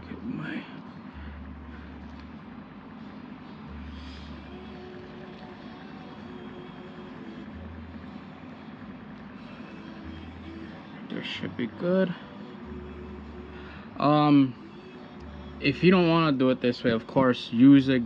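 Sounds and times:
low hum: 0.0s - 18.0s.

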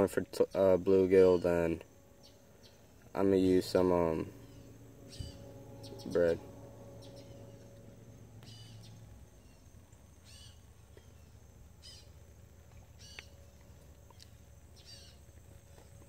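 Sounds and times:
low background hum: 0.0s - 16.0s
faint high bird chirps: 0.4s - 3.1s, 4.2s - 15.8s.

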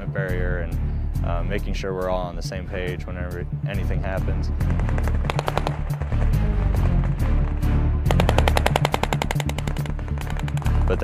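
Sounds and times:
background music with low bass: 0.0s - 11.0s
machine-gun fire bursts: 4.6s - 10.9s.

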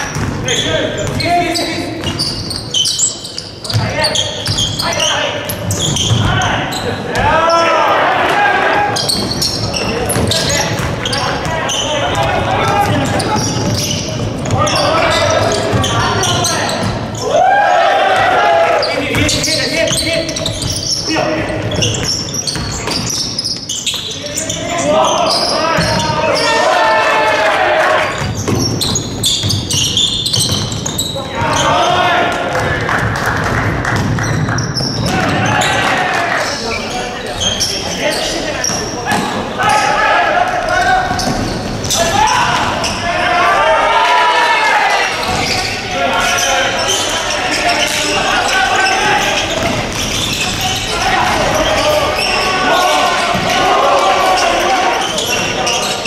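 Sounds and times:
basketball bouncing on wooden floor: 0.1s - 0.4s, 9.1s - 14.8s, 28.2s - 31.6s, 32.5s - 35.6s
players shouting: 3.6s - 22.5s, 24.1s - 28.4s, 29.7s - 33.2s, 34.8s - 56.0s.

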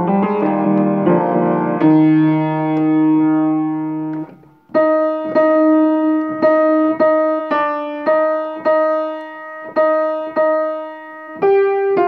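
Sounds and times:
piano chord held: 0.0s - 12.0s
piano single notes struck: 0.0s - 12.0s.

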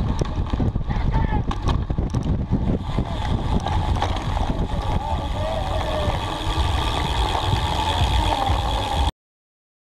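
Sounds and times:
wind buffeting microphone: 0.0s - 9.1s.

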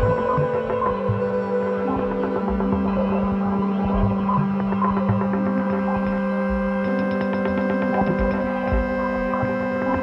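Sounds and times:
low synth drone: 0.0s - 10.0s.

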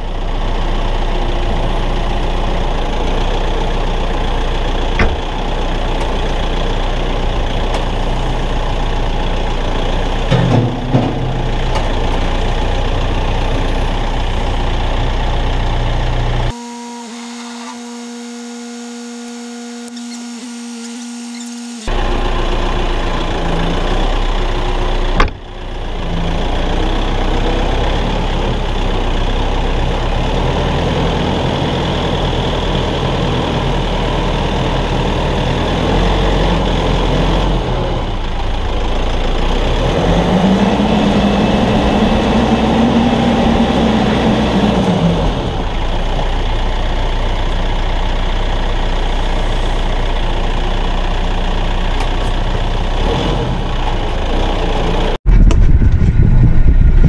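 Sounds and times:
tractor diesel engine running: 0.0s - 16.6s, 21.7s - 57.0s.

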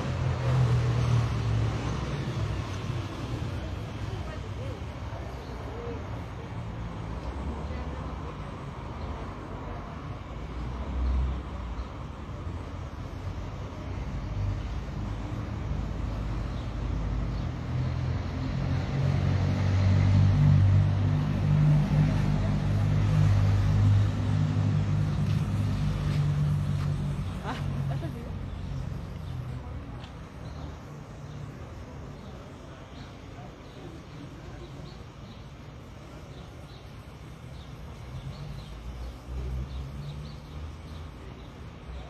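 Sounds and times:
street traffic: 0.0s - 42.0s
vehicle engine running: 0.0s - 42.0s.

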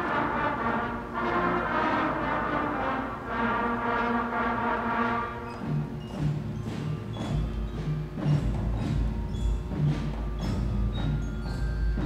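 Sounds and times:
brass holding a chord: 0.0s - 5.5s.

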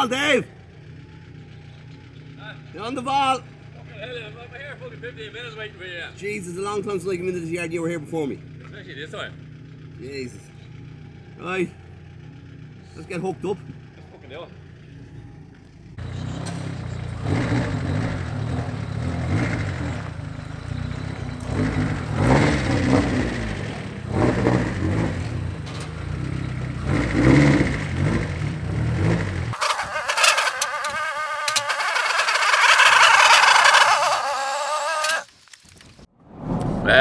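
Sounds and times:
car engine with throttle blips: 0.0s - 34.3s.

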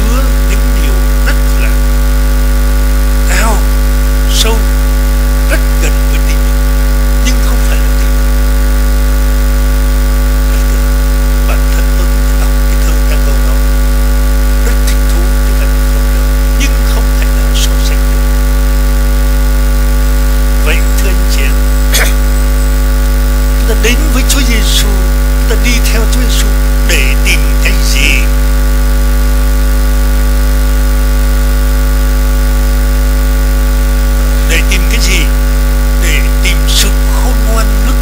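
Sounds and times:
electrical mains hum: 0.0s - 38.0s.

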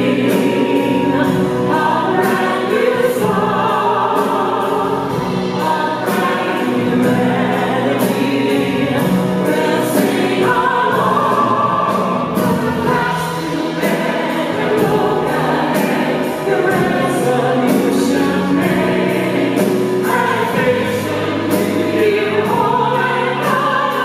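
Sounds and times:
instrumental accompaniment: 0.0s - 24.0s
mixed choir singing: 0.0s - 24.0s.

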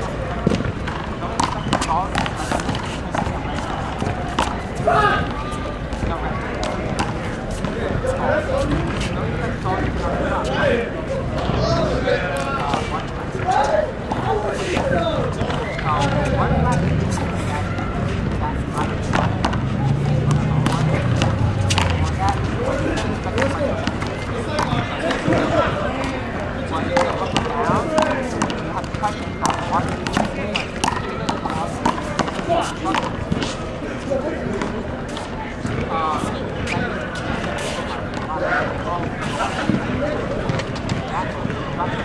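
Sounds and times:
background voices: 0.0s - 42.0s.

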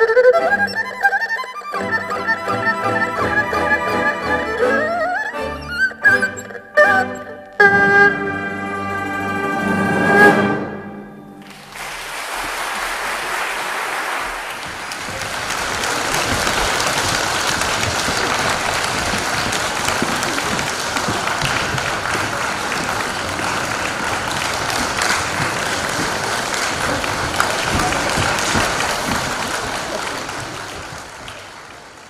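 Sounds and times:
audience applauding: 11.4s - 32.0s.

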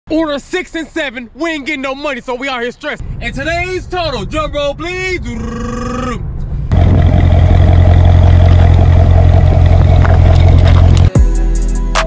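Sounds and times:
loud car engine: 6.7s - 11.1s.

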